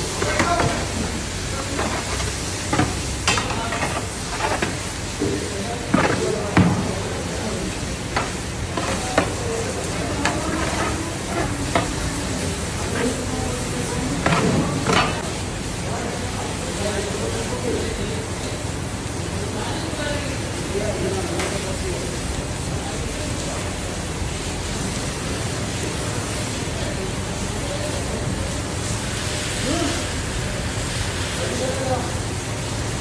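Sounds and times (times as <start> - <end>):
chicken sizzling in a pan: 0.0 - 33.0
ladle knocking against pan: 5.9 - 6.9.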